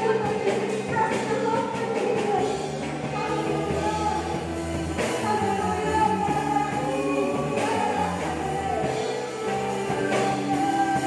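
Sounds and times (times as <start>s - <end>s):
amplified electric guitar: 0.0s - 11.0s
people singing: 5.0s - 11.0s.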